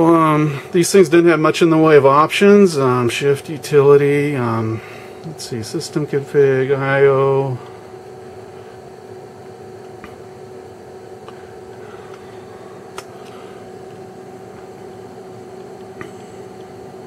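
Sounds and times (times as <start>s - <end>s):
fan-like equipment hum: 0.0s - 17.0s.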